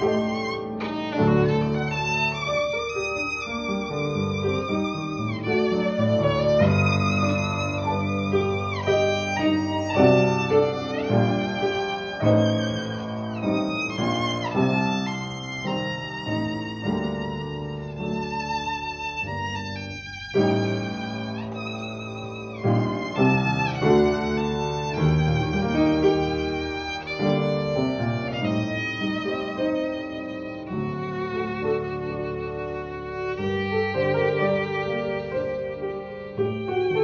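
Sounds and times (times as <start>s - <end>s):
piano accompaniment: 0.0s - 37.0s
violin playing slow melody: 0.0s - 37.0s.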